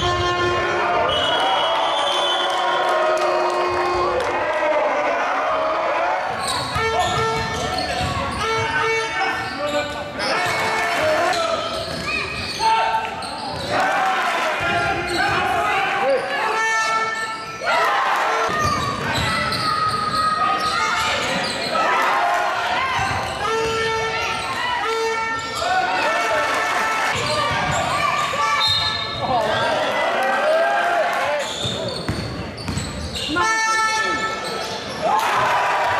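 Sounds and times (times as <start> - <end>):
basketball bouncing on court: 6.6 - 8.8, 18.5 - 20.3, 22.9 - 23.9, 27.2 - 28.0, 31.6 - 33.2.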